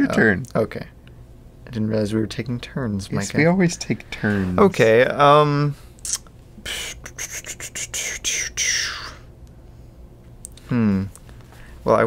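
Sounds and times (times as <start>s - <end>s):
faint room hum: 0.0s - 12.0s
person whispering: 6.1s - 9.2s.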